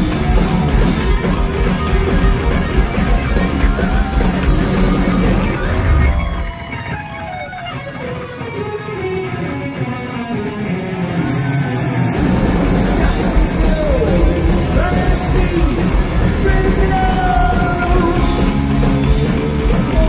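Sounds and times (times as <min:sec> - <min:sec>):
electric guitar solo: 0:00.0 - 0:20.0
heavy metal band playing: 0:00.0 - 0:20.0.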